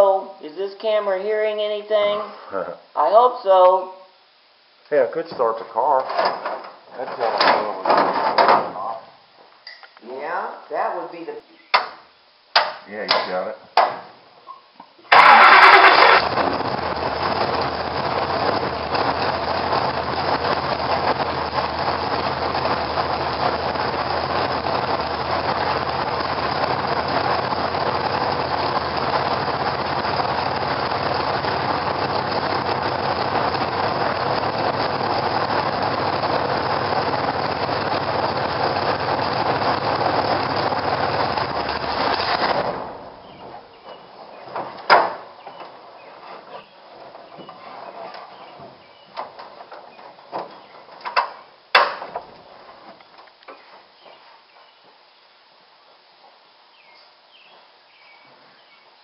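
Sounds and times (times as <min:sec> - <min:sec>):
race car engine starting and idling: 0:15.1 - 0:51.4.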